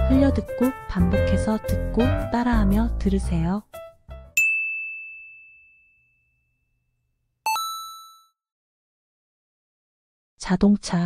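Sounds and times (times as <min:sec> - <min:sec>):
bell-like chime: 0:04.4 - 0:06.6, 0:07.5 - 0:08.3
high ding: 0:04.4 - 0:06.6, 0:07.5 - 0:08.3.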